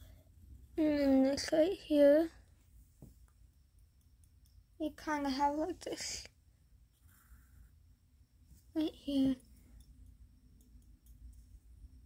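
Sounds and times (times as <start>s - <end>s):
young woman speaking: 0.8s - 2.4s, 4.8s - 6.3s, 8.7s - 9.5s.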